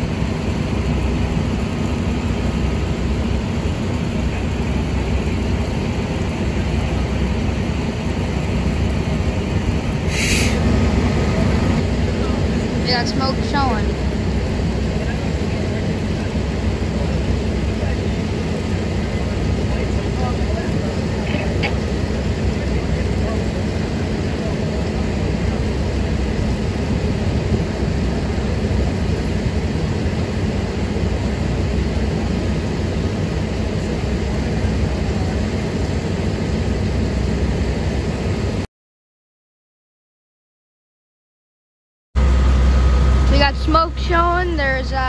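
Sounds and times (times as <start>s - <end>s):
low engine drone: 0.0s - 38.7s, 42.2s - 45.0s.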